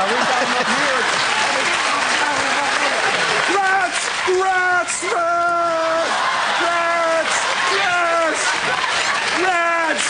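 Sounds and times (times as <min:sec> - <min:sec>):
audience applauding: 0:00.0 - 0:10.0
audience laughing: 0:00.0 - 0:10.0.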